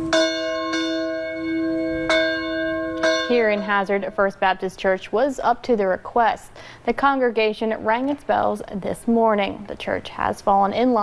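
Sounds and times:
church bell ringing: 0:00.0 - 0:04.4.

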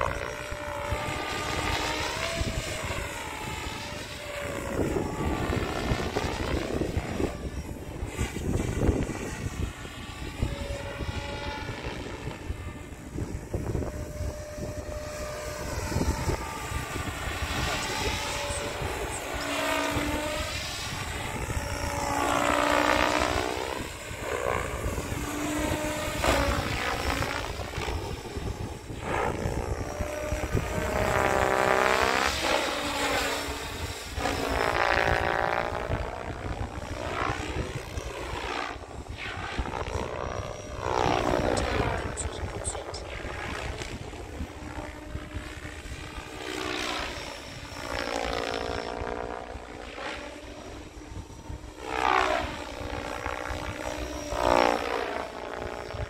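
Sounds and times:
motor whine: 0:00.0 - 0:56.0
rc helicopter rotor noise: 0:00.0 - 0:56.0.

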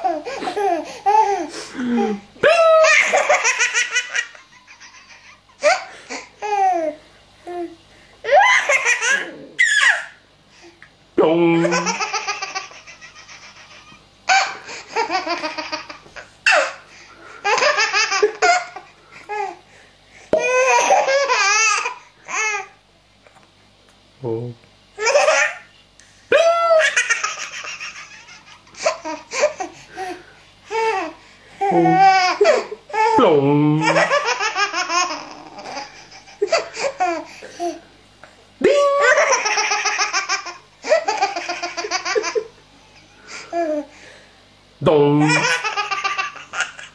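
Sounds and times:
baby laughing: 0:00.0 - 0:07.0, 0:08.3 - 0:10.2, 0:11.6 - 0:16.8, 0:17.4 - 0:19.6, 0:20.4 - 0:22.7, 0:25.0 - 0:25.7, 0:26.6 - 0:33.2, 0:33.8 - 0:37.8, 0:38.9 - 0:42.5, 0:45.2 - 0:46.9.

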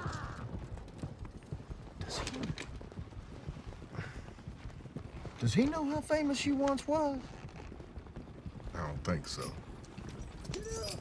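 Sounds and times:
horses' hooves clopping: 0:00.0 - 0:11.0.

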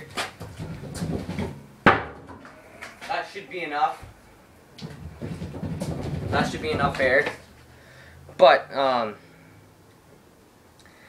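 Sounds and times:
sharp loud knock: 0:01.4 - 0:02.4.

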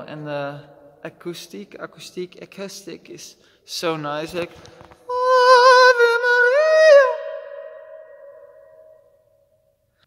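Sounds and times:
echo of high sung note: 0:05.1 - 0:09.2.

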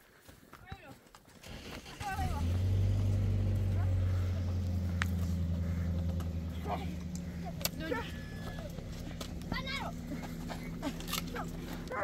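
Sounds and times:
low motor hum: 0:02.0 - 0:12.0.

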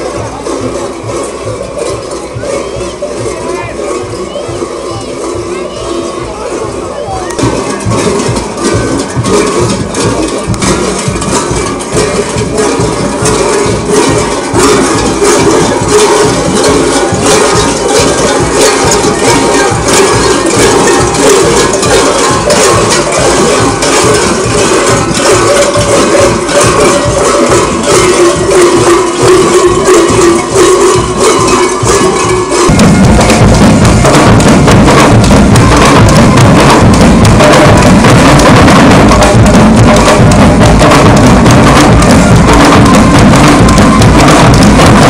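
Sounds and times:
rattling and clicking percussion: 0:00.0 - 0:45.0.

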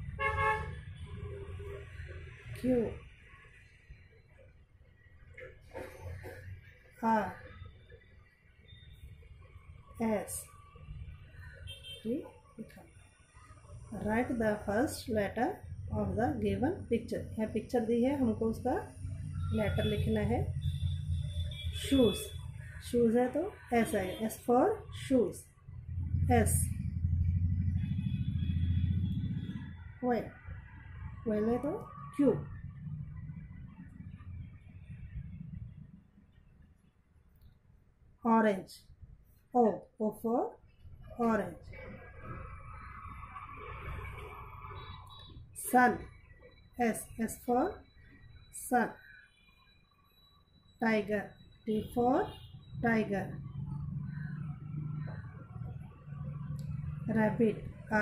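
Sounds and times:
steady low rumble: 0:25.5 - 0:36.8.

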